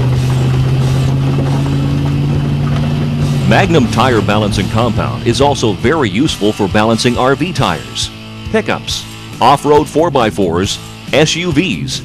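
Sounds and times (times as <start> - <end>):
tyre and road noise: 0.0 - 11.2
engine hum: 0.0 - 12.0.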